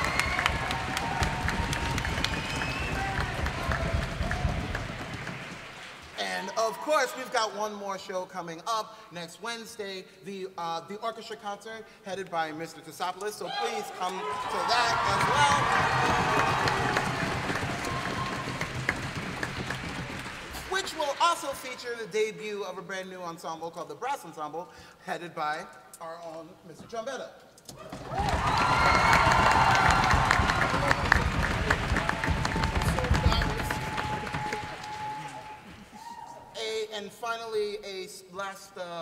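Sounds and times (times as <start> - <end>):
audience applauding: 0.0 - 6.9, 14.1 - 21.8, 27.9 - 36.2.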